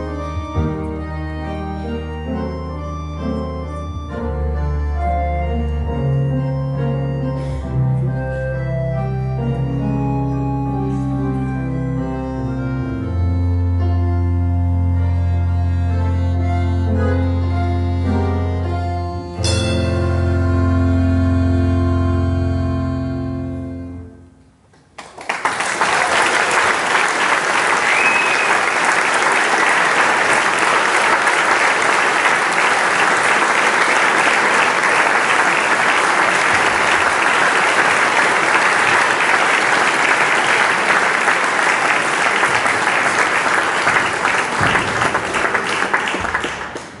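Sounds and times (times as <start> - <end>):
music: 0.0 - 24.7, 27.8 - 47.0
audience applauding: 24.8 - 47.0.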